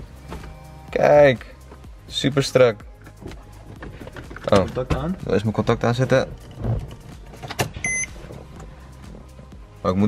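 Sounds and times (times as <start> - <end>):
short beep: 7.8 - 8.2.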